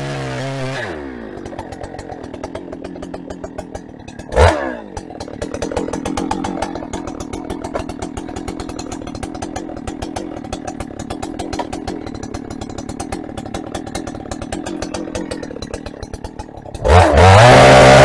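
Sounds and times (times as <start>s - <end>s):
chainsaw cutting and idling: 0.0s - 18.0s
chainsaw throttle rev: 0.0s - 18.0s.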